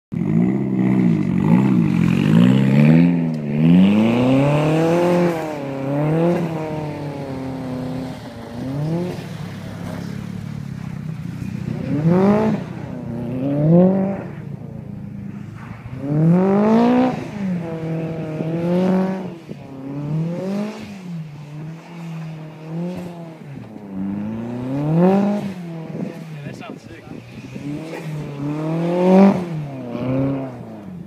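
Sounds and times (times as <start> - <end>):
car engine revving: 0.1 - 31.0.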